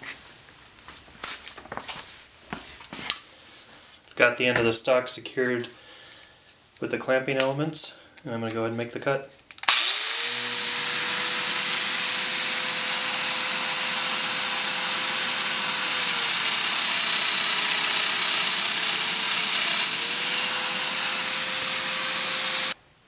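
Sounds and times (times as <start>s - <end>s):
power tool whining through wood: 9.6s - 22.8s.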